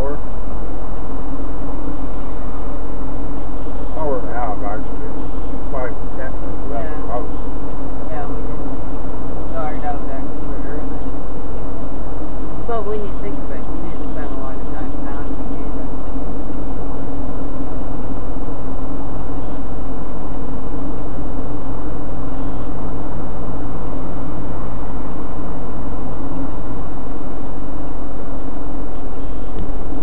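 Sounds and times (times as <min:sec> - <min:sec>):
car road and engine noise: 0:00.0 - 0:30.0
people talking faintly: 0:03.9 - 0:08.8, 0:12.6 - 0:16.3.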